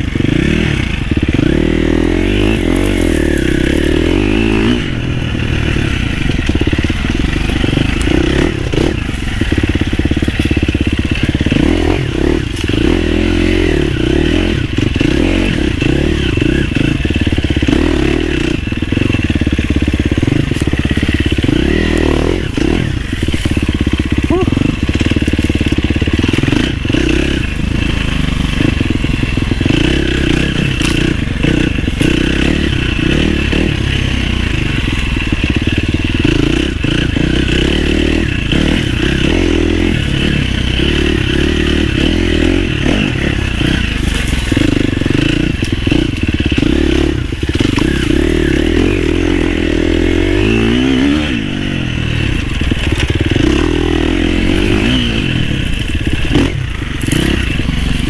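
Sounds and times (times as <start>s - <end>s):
dirt bike engine revving: 0.0s - 58.0s
bike clattering over rough ground: 2.4s - 4.4s, 6.0s - 13.0s, 18.9s - 27.0s, 43.2s - 49.2s, 52.2s - 53.7s.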